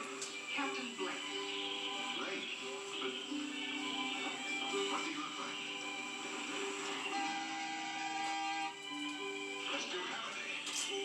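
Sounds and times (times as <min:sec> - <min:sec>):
television background music: 0:00.0 - 0:11.0.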